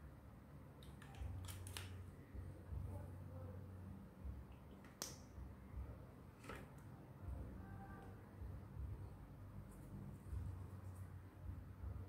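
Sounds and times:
faint low rumble: 2.0 - 4.7, 5.3 - 12.0.

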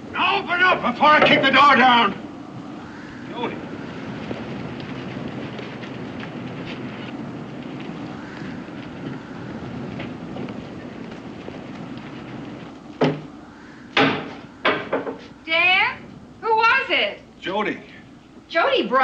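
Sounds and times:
steady rushing noise: 0.0 - 19.0.

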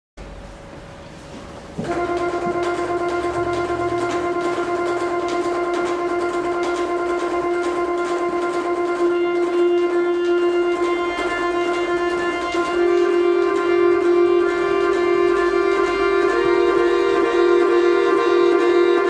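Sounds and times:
low accordion bass note: 1.1 - 19.0
accordion holding long note: 1.8 - 19.0.

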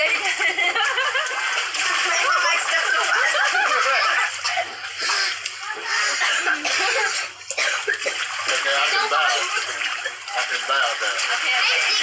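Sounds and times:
voices talking and calling out: 0.0 - 12.0
water splashing in a pool: 0.0 - 12.0.

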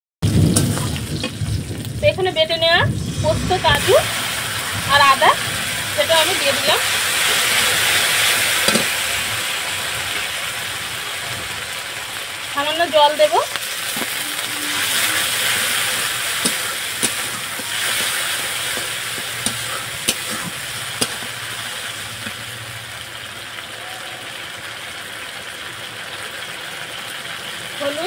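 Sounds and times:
liquid sizzling in hot oil: 0.2 - 28.0
metal spatula clicking on pan: 8.6 - 8.9, 16.4 - 21.3.

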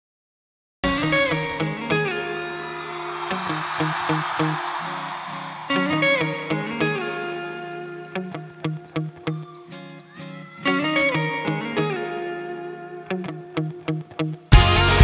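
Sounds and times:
live band music with electric guitar: 0.8 - 15.0.

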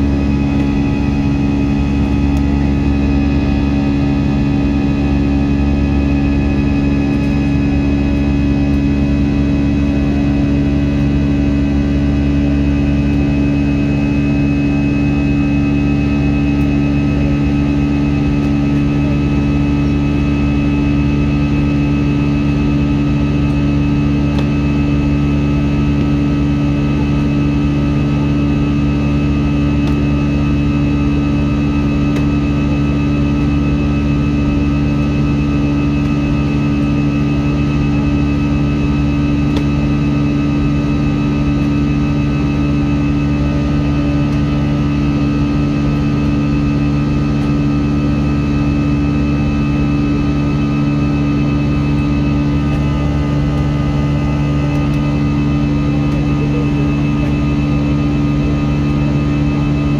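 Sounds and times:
airliner cabin engine drone: 0.0 - 59.9
faint high whine: 0.0 - 59.9.

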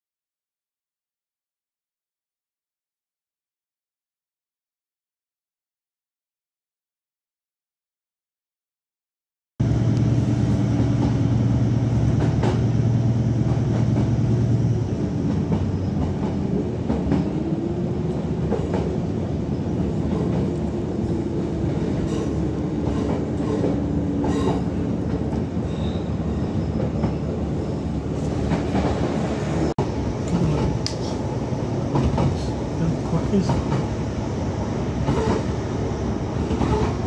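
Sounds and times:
train rumble: 9.6 - 37.0.

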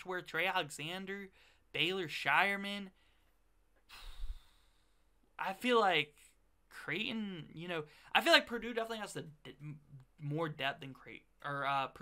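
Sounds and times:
man exhaling into microphone: 3.9 - 5.0.

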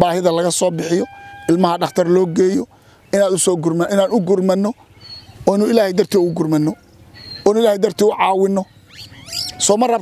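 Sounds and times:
man talking: 0.0 - 4.8, 5.4 - 6.8, 7.4 - 8.7, 9.5 - 10.0.

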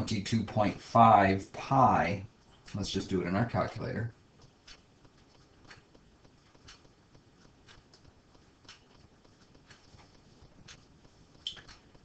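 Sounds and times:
computer mouse clicks: 4.4 - 12.0.

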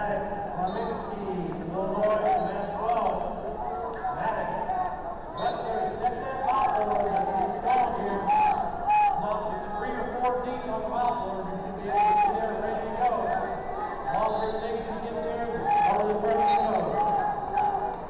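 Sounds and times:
chatter and calls of many voices: 0.0 - 18.0.

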